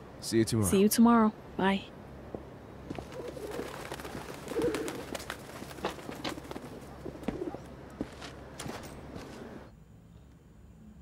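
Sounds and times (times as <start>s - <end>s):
footsteps on pavement: 2.3s - 3.1s, 5.6s - 9.5s
pigeons cooing: 2.9s - 7.8s.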